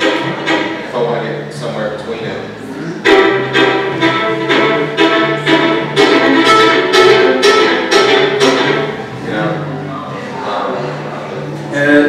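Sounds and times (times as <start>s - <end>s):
fiddle playing bowed notes: 0.0s - 1.9s, 2.8s - 10.1s
held low notes: 0.0s - 12.0s.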